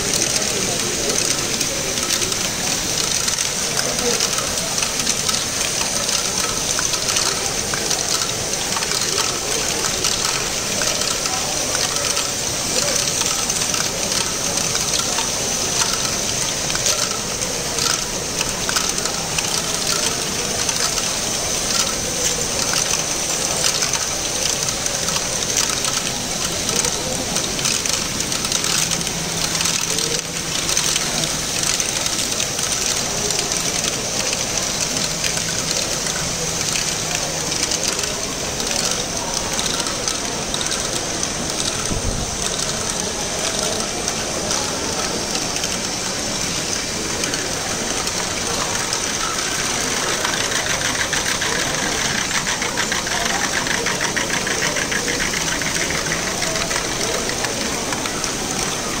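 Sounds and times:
crowd chatter: 0:00.0 - 0:59.0
plastic balls clicking and clattering: 0:00.0 - 0:59.0
small motors and gears whirring: 0:00.0 - 0:59.0.

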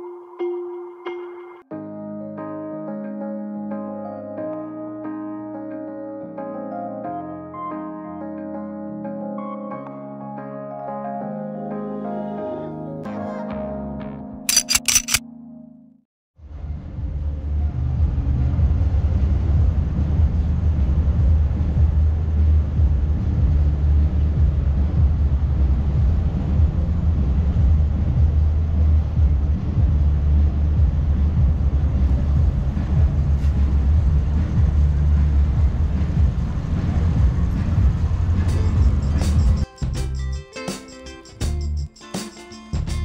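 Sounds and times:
city street traffic rumble: 0:16.4 - 0:40.4.

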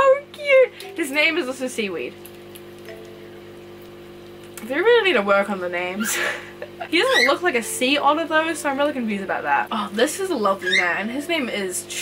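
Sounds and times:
low equipment hum: 0:00.0 - 0:12.0.

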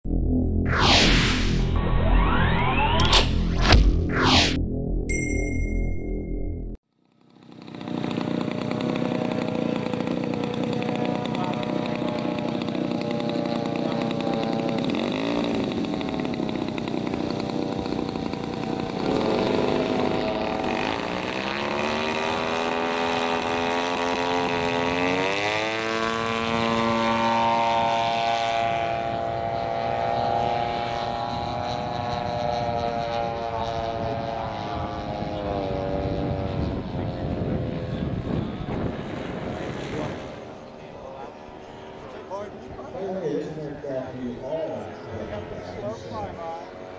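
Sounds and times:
model airplane engine and propeller: 0:06.9 - 0:46.9.

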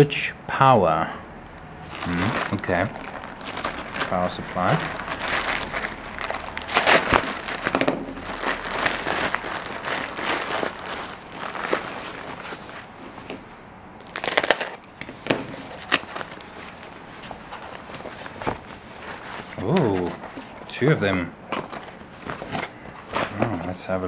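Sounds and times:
plastic and foam wrap crinkling: 0:01.8 - 0:13.4, 0:14.0 - 0:24.0.

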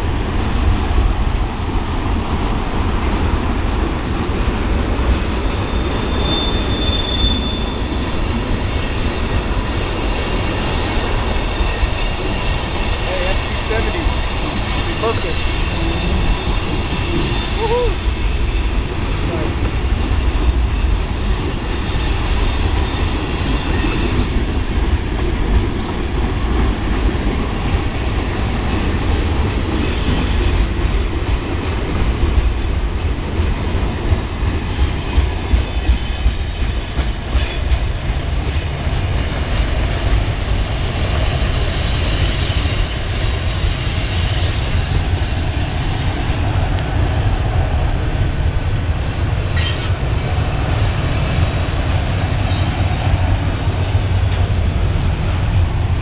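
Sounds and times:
train wheels rolling on rails: 0:00.0 - 0:56.0.

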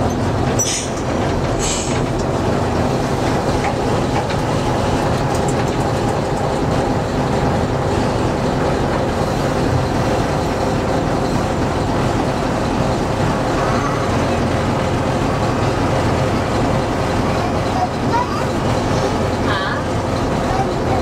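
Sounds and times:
diesel engine drone: 0:00.0 - 0:21.0
wheels rumbling on rail: 0:00.0 - 0:21.0.

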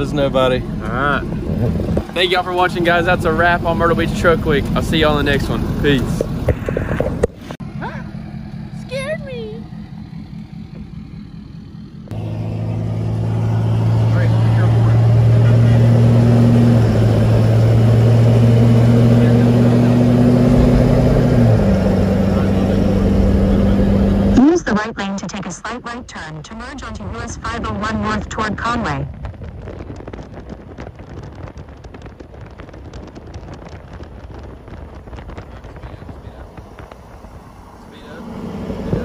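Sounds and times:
diesel truck engine droning: 0:00.0 - 0:39.0.

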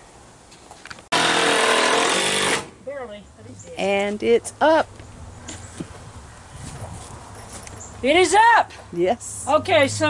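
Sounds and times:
electric drill driving a screw: 0:01.2 - 0:02.7.

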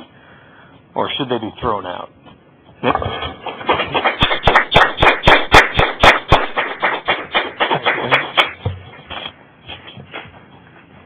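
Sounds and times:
audience clapping: 0:03.5 - 0:08.7.

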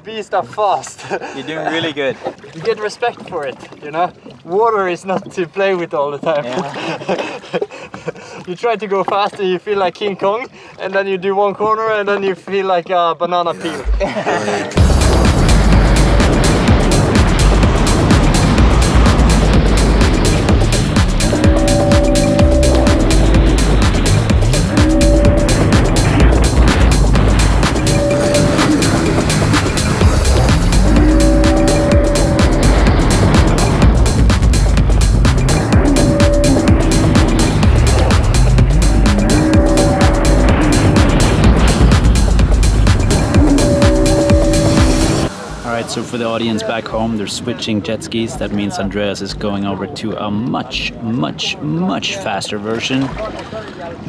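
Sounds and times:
wind buffeting microphone: 0:14.8 - 0:45.3
jet ski engine: 0:14.8 - 0:45.6
background music with repeated chords: 0:14.8 - 0:46.1.

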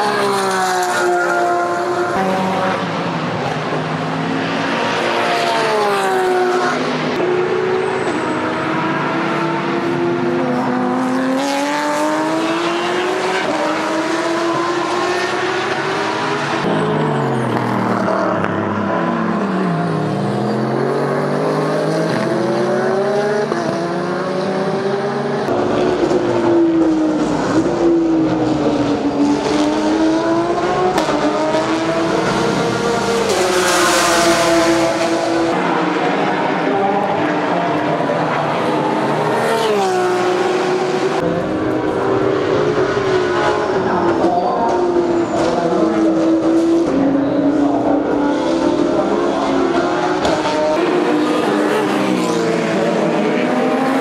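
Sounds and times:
race car engines passing: 0:00.0 - 0:54.0.

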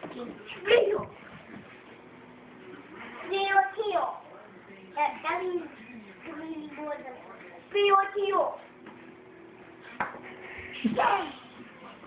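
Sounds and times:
young child's voice: 0:00.1 - 0:01.1, 0:10.9 - 0:11.5.

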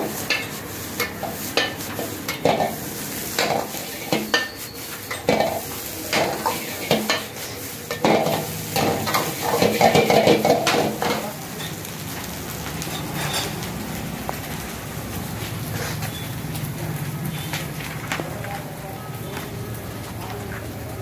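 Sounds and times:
noodles sizzling in a wok: 0:00.0 - 0:18.3.

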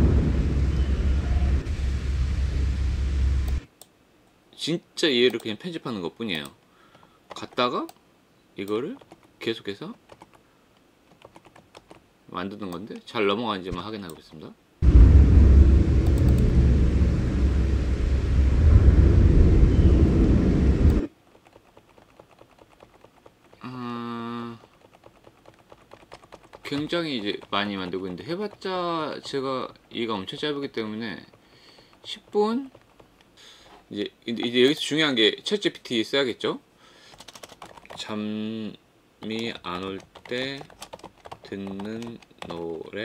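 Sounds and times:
deep wind noise: 0:00.0 - 0:03.6, 0:14.8 - 0:21.1.

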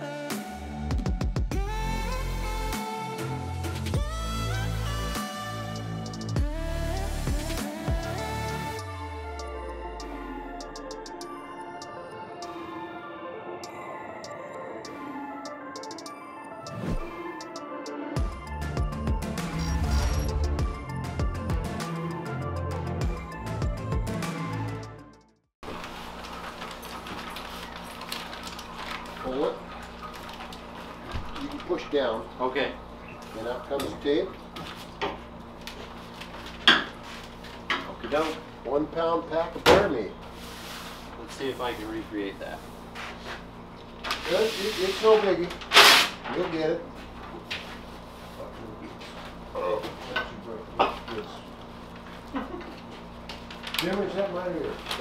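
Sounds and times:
paper rustling: 0:25.6 - 0:31.8.

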